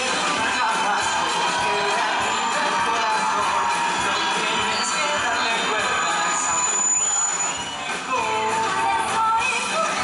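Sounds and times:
audience cheering and shouting: 0.0 - 10.0
stage show music: 0.0 - 10.0.

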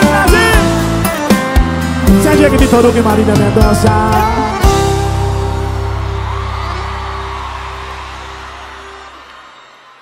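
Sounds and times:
audience whooping and cheering: 4.5 - 10.0.

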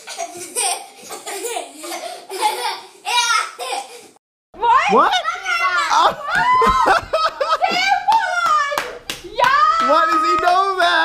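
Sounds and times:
woman's excited voice: 4.6 - 10.0
excited children's voices: 4.6 - 11.0
hands clapping: 6.3 - 6.8, 8.1 - 11.0.

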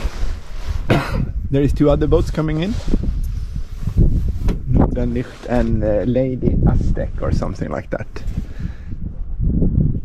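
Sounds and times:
wind buffeting microphone: 0.0 - 10.0
man speaking: 4.8 - 8.2.

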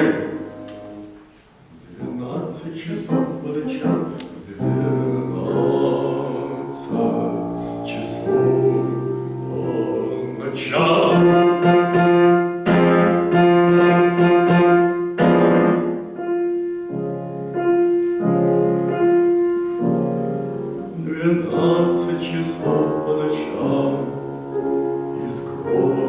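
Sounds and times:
grand piano struck chords: 0.0 - 26.0.

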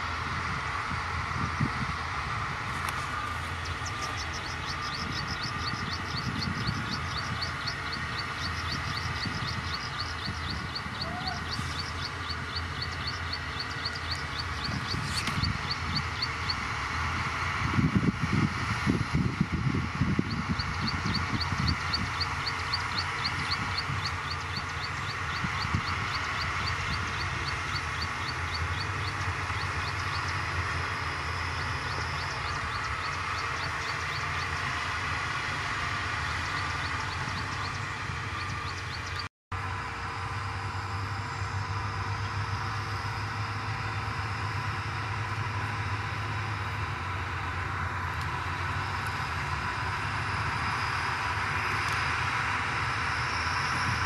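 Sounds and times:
bulldozer diesel engines rumbling: 0.0 - 54.0.

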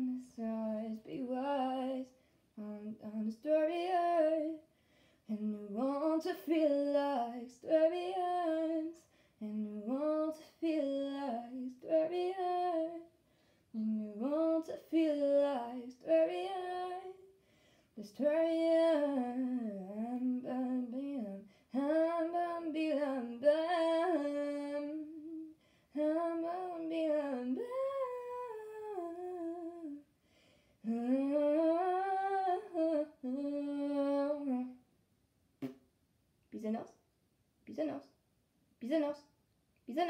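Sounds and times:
woman singing unaccompanied: 0.0 - 4.7, 5.3 - 13.1, 13.7 - 17.3, 18.0 - 30.1, 30.8 - 34.8.

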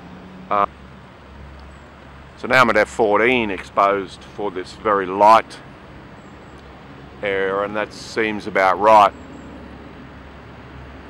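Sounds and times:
distant road traffic hum: 0.0 - 11.0.

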